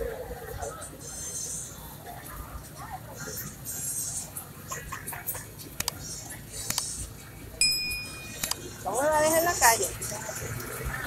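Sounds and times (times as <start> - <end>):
electronic chime: 7.6 - 8.5
sharp click: 7.9 - 8.6.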